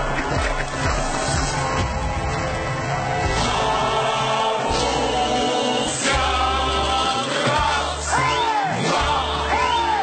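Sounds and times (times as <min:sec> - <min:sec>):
folk choir singing: 0:03.3 - 0:10.0.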